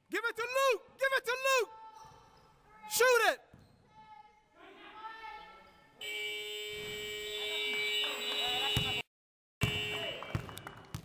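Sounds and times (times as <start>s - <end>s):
scoreboard buzzer tone: 6.0s - 9.0s, 9.6s - 10.2s.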